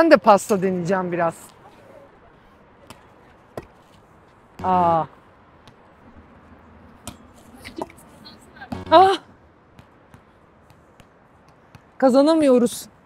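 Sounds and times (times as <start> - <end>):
volleyball thumping on hard court: 8.7 - 9.1.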